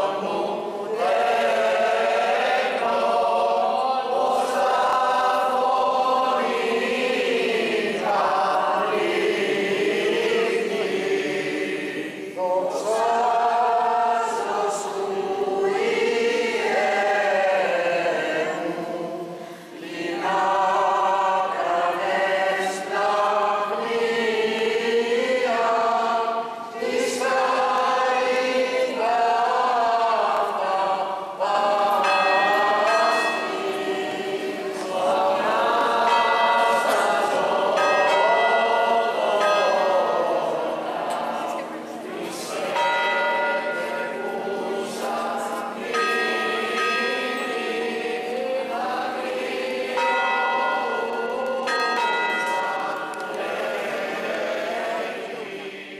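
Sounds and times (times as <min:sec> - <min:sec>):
choir chanting: 0:00.0 - 0:55.9
church bell ringing: 0:31.8 - 0:34.9, 0:35.8 - 0:41.1, 0:42.6 - 0:48.5, 0:49.1 - 0:54.3.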